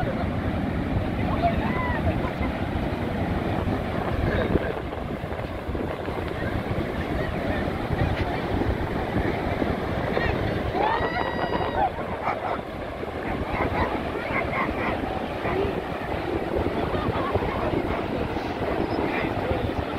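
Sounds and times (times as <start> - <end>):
ocean surf: 0.0 - 19.9
wind buffeting microphone: 0.0 - 19.9.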